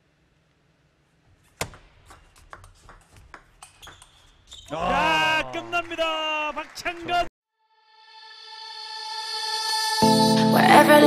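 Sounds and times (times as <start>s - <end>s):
bat hitting table tennis ball: 1.5s - 4.5s
ball bouncing on table: 1.5s - 4.6s.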